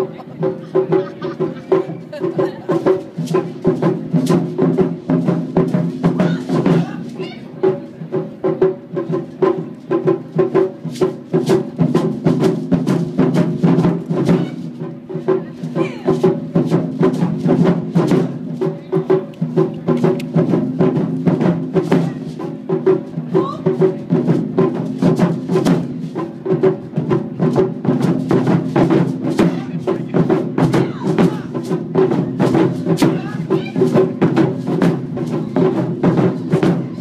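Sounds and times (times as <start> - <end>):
taiko drums playing fast rhythm: 0.0 - 37.0.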